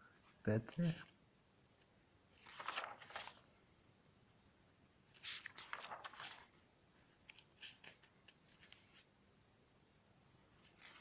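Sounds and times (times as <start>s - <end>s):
paper pages crackling: 2.3s - 3.6s, 5.0s - 9.1s, 10.5s - 11.0s.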